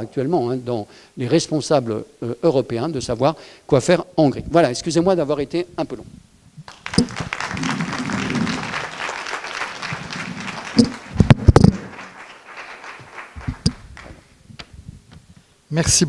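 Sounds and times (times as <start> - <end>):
audience applauding: 6.7 - 14.3
loud thumps: 10.0 - 12.1.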